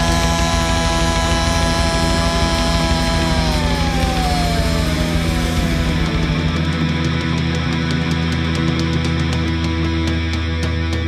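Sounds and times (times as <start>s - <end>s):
punk rock music: 0.0s - 11.0s.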